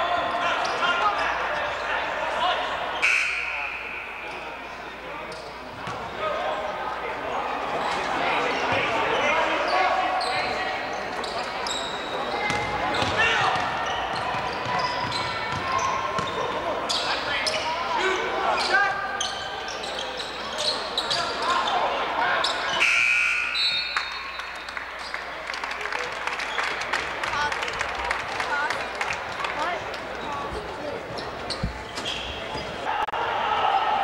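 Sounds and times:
voices of players and spectators: 0.0s - 34.0s.

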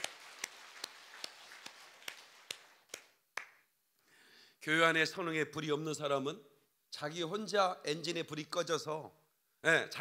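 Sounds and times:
person clapping hands: 0.0s - 3.7s.

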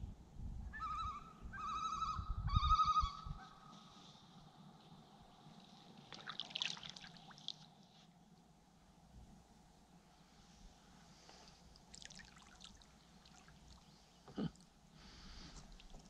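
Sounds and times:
loon tremolo call: 0.7s - 3.6s.

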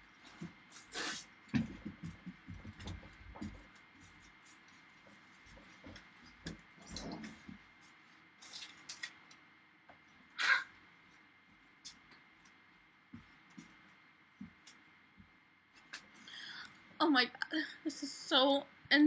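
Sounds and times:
soft knocks and rustles: 1.5s - 9.1s.

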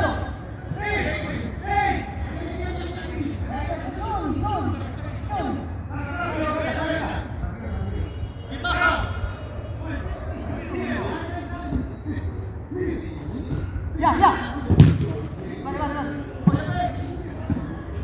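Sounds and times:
players shouting: 8.4s - 18.0s
football being kicked: 14.7s - 15.4s.

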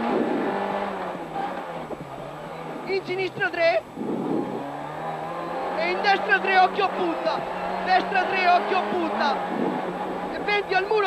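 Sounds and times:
rally car engine revs dropping: 0.0s - 10.7s.

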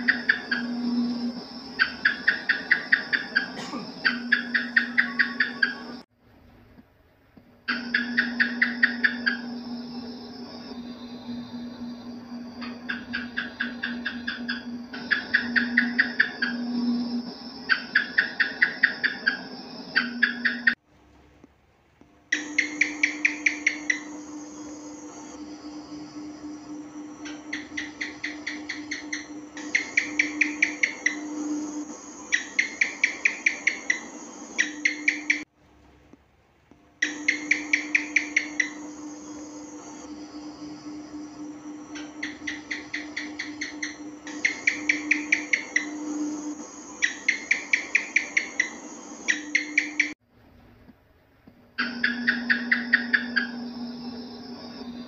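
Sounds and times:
geckos chirping: 0.0s - 6.0s, 7.7s - 20.8s, 22.3s - 35.5s, 37.0s - 50.2s, 51.8s - 55.0s
steady low hum: 0.0s - 55.0s.

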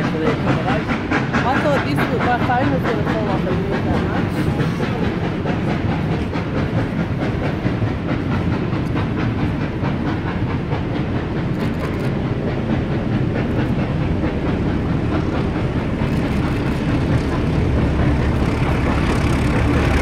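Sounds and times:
train carriages rumbling past: 0.0s - 20.0s.

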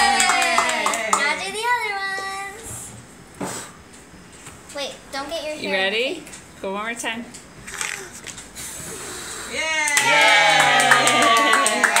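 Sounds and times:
people clapping in time: 0.0s - 1.5s, 9.8s - 12.0s
people cheering yay: 0.0s - 1.6s, 9.5s - 12.0s
child blowing out candle: 7.7s - 9.6s.

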